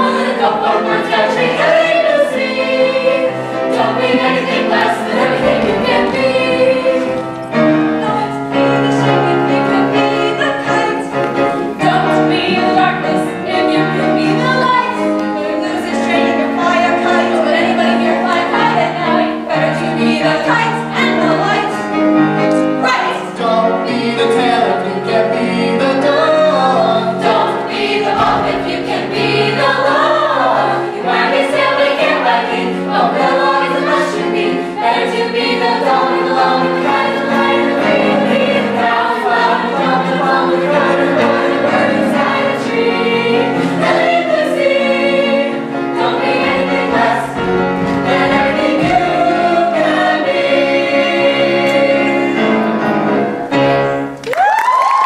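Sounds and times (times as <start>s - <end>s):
children's choir singing: 0.0s - 54.2s
piano accompaniment: 0.0s - 55.0s.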